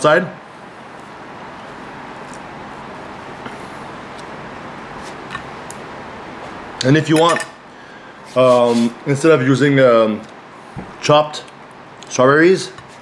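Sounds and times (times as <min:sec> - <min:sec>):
room noise hiss: 0:00.0 - 0:13.0.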